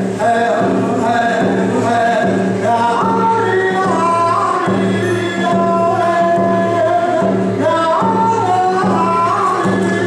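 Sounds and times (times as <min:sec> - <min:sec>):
hand drum beats: 0:00.0 - 0:10.0
man singing in high voice: 0:00.0 - 0:10.0.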